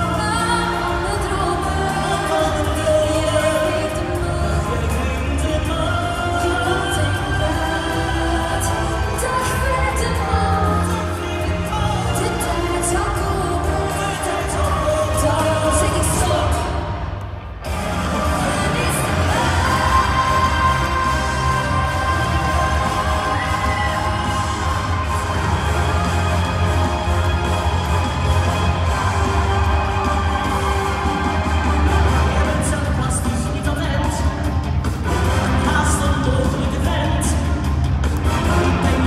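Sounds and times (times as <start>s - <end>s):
live pop music with singing: 0.0s - 39.0s.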